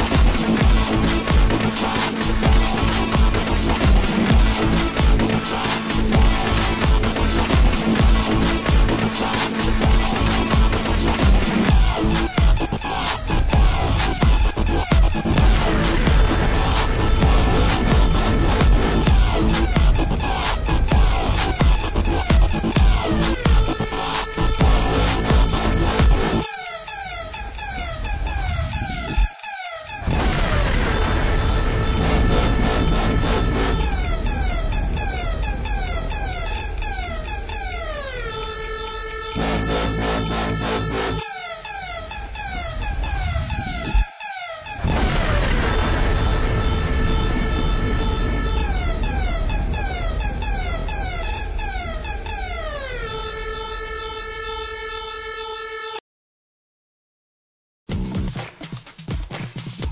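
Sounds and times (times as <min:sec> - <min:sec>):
electronic music: 0:00.0 - 0:56.0
quick falling electronic tones: 0:15.2 - 0:55.8.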